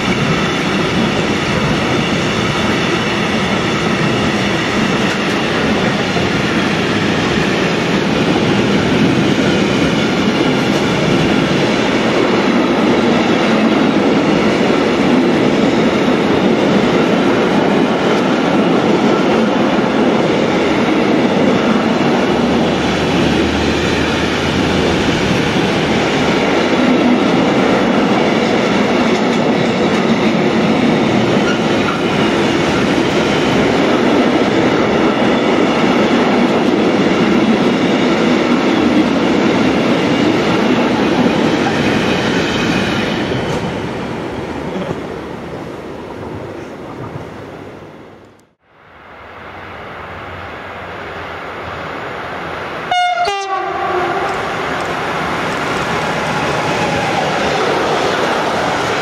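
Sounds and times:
freight train wheels rumbling on rails: 0.0s - 48.6s, 50.0s - 59.0s.

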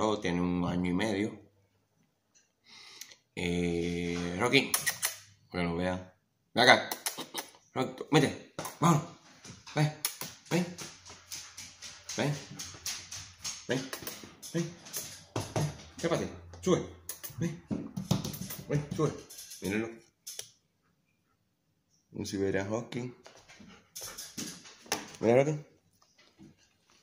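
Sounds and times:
man calling a dog: 3.3s - 20.1s, 22.1s - 23.3s, 25.0s - 25.7s
dog panting: 23.2s - 25.2s.

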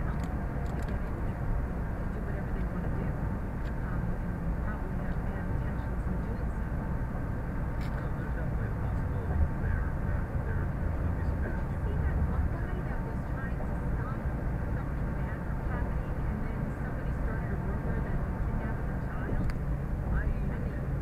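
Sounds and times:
car road noise inside cabin: 0.0s - 21.0s.

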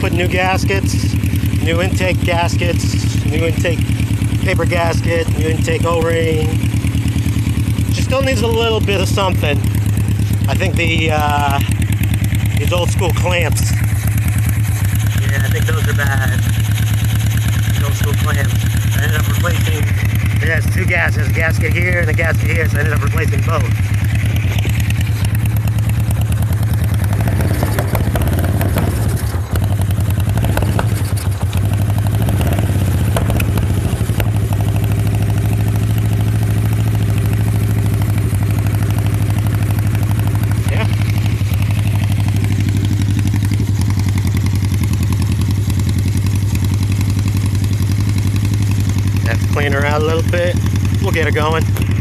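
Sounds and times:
motorcycle engine idling: 0.0s - 52.0s.

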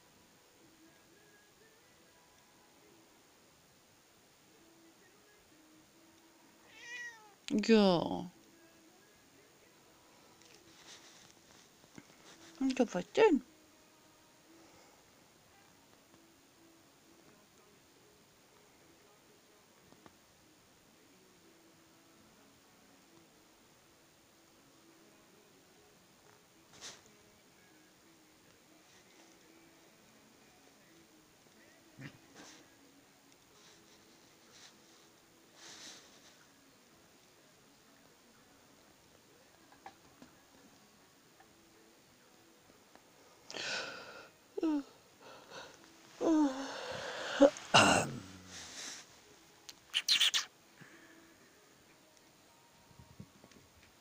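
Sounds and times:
cat meow falling in pitch: 6.6s - 7.4s
soft rustle: 10.3s - 12.6s, 48.5s - 49.4s
short cat vocal sound: 50.0s - 50.5s.

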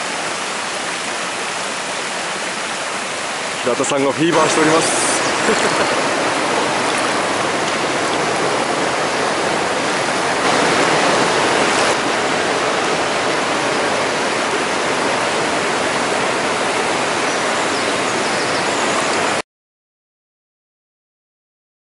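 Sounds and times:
stream rushing over rocks: 0.0s - 19.4s.

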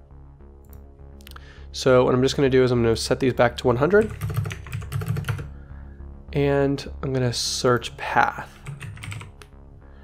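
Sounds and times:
keyboard keys clicking: 4.0s - 5.5s, 8.6s - 9.5s.

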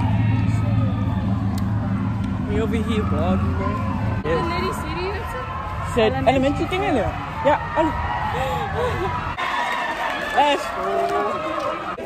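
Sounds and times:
low rumble: 0.0s - 9.4s.

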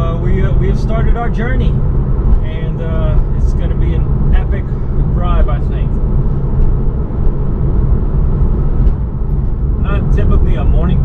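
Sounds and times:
car engine cruising: 0.0s - 11.0s.

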